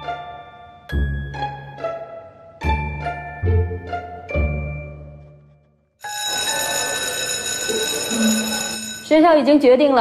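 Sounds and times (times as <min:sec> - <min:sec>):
soft string music: 0:00.0 - 0:05.4
electric bell ringing: 0:06.0 - 0:09.5.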